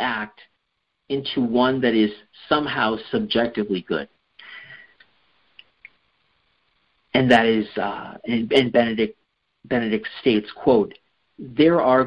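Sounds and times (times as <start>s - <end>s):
man breathing: 4.4s - 5.1s.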